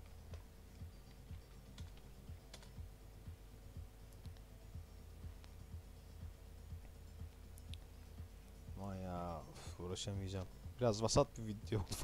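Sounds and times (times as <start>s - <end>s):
faint low pulse: 0.0s - 12.0s
keyboard typing: 0.1s - 2.8s.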